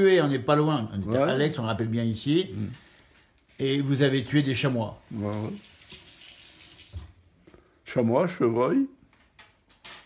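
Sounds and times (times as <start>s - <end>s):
water running: 5.0s - 7.4s.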